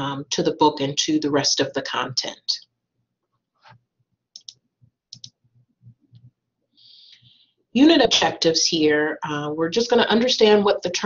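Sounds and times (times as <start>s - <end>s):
faint computer clicks: 4.4s - 5.4s.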